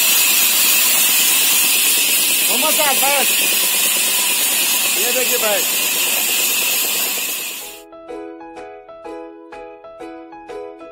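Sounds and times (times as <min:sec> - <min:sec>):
light music with plucked notes: 0:07.8 - 0:10.9.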